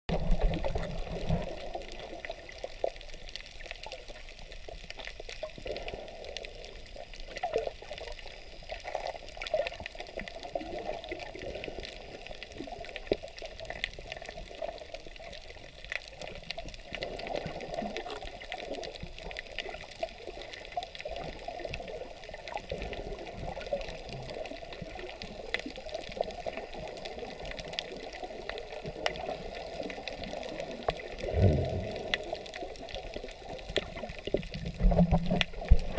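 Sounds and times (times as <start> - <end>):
muffled underwater wash: 0.1 - 35.9
small underwater clicks and crackles: 0.1 - 35.9
low water swell: 31.2 - 32.5.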